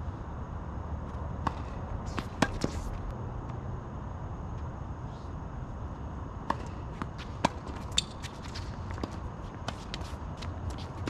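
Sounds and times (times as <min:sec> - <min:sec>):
low outdoor rumble: 0:00.0 - 0:11.0
tennis ball strikes and bounces: 0:01.4 - 0:02.9, 0:06.4 - 0:11.0.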